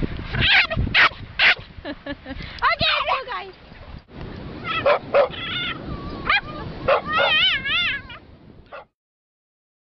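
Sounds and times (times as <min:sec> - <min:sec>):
dog yipping: 0:00.4 - 0:01.6, 0:04.6 - 0:08.9
dog whining: 0:04.6 - 0:08.2.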